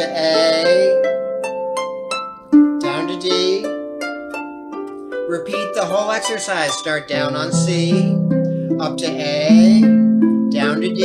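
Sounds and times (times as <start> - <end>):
harp notes plucked: 0.0 - 11.0.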